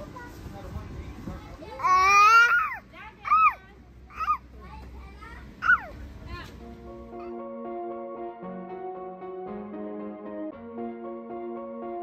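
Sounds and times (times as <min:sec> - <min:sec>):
child's high-pitched wordless calls: 0:01.8 - 0:04.5, 0:05.1 - 0:06.0.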